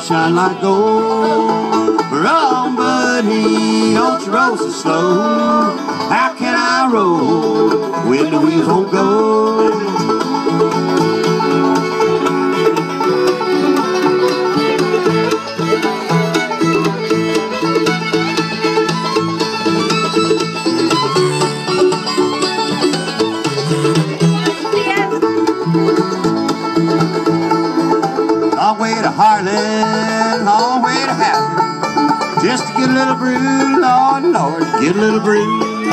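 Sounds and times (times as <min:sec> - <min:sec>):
banjo: 0:00.0 - 0:35.9
bluegrass band playing: 0:00.0 - 0:35.9
walking bass: 0:00.0 - 0:35.9.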